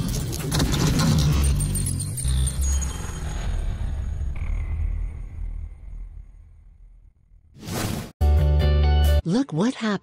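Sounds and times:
metallic clattering and jingling: 0.0s - 2.5s.

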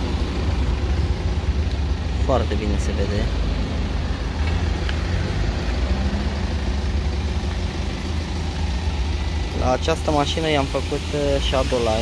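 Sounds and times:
engine idling: 0.0s - 12.0s
street traffic: 0.0s - 12.0s.

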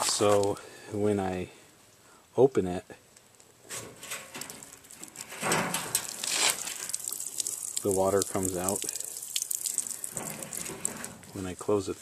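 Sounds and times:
water splashing onto gravel: 4.2s - 11.8s.

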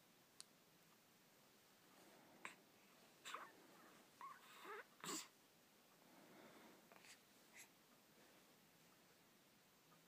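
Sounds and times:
baby cooing squeaks: 4.2s - 5.3s.

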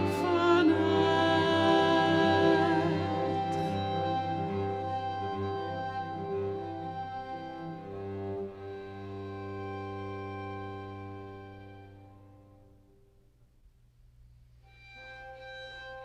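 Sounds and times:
string quartet bowed chords: 0.0s - 13.2s, 14.6s - 16.0s.

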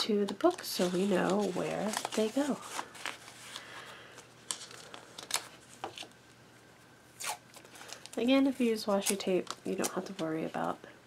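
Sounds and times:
paper rustle: 0.4s - 6.1s
tape ripping: 7.2s - 8.1s.

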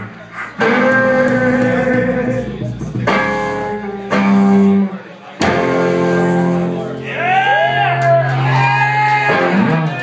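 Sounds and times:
live band chords ringing: 0.0s - 10.0s.

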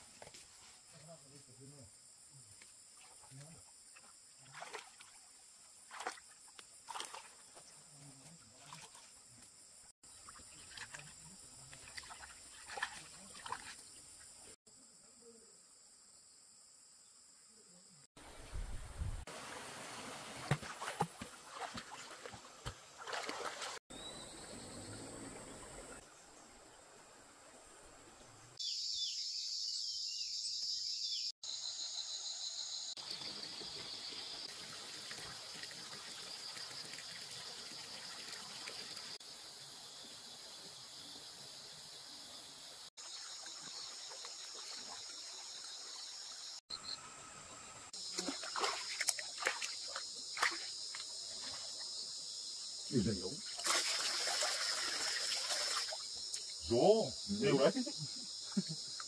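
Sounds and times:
water splashes: 3.0s - 9.2s, 10.0s - 14.6s, 18.2s - 23.8s, 33.3s - 39.2s, 43.0s - 46.6s, 48.0s - 51.8s, 53.4s - 56.8s
stream water trickling: 8.4s - 14.6s, 18.2s - 28.6s, 33.0s - 46.6s, 47.9s - 52.0s, 53.4s - 56.9s.

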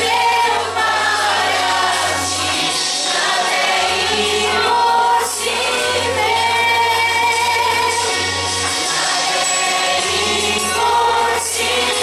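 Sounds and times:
mixed choir singing: 0.0s - 12.0s.

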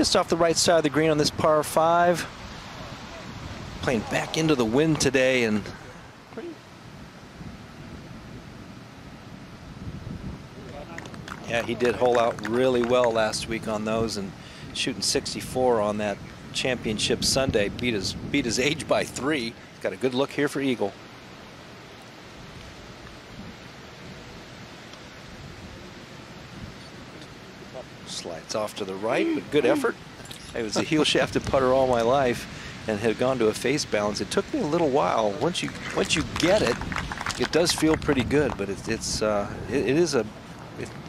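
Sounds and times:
outdoor background hiss: 0.0s - 41.0s
wind noise on microphone: 2.3s - 6.0s, 6.8s - 12.5s, 13.1s - 19.4s, 35.4s - 41.0s.

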